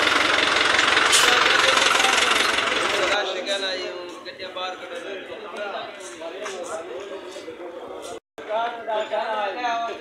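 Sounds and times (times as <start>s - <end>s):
truck engine running: 0.0s - 3.2s
faint voices: 1.2s - 10.0s.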